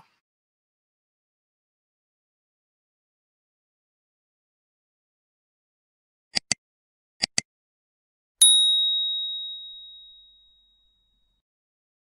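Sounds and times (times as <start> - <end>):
bright bell ding: 8.4 - 11.2.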